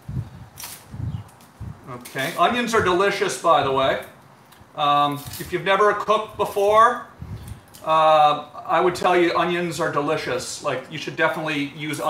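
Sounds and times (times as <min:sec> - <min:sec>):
onion skin crackling: 0:00.4 - 0:02.6, 0:03.9 - 0:05.7.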